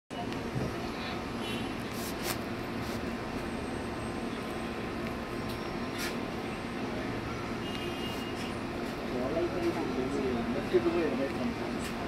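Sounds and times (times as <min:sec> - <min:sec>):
steady background hum: 0:00.1 - 0:12.0.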